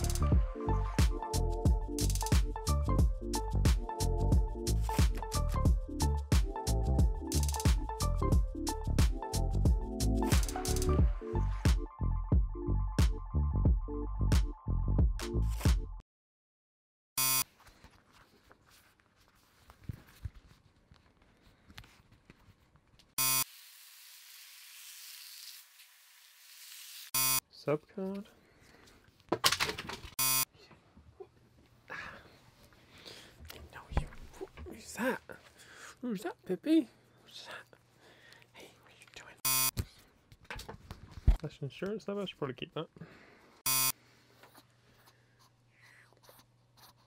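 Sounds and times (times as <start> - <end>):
short electronic beep: 39.5 - 39.7, 43.7 - 43.9.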